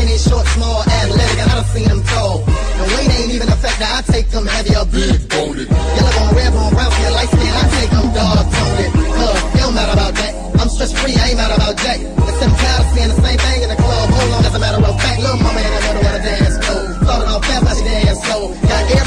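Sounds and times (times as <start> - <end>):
rapping over heavy bass beat: 0.0 - 19.0.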